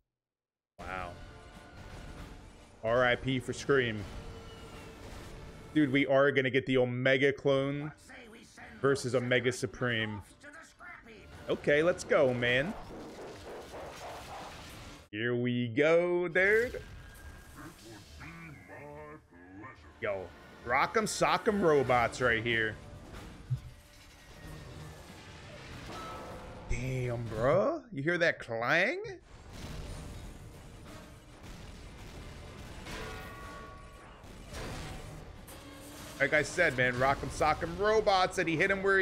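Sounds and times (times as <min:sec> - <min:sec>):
cartoon soundtrack music: 0:00.8 - 0:14.8, 0:15.4 - 0:27.9, 0:32.6 - 0:39.0
cartoon voice speaking: 0:17.6 - 0:20.0
crashes and clangs: 0:29.4 - 0:38.7.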